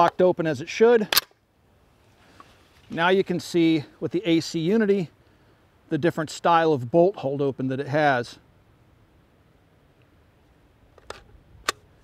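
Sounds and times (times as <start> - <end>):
magazine clicks: 1.1 - 1.4.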